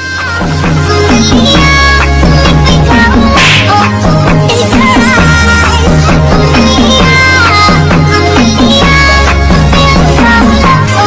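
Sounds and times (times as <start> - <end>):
electronic dance music: 0.0 - 11.0
noisy swish sound effect: 3.4 - 4.0.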